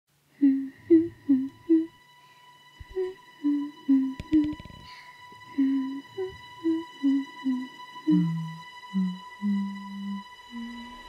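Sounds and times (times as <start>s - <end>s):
high voice humming sing-song notes: 0.4s - 11.0s.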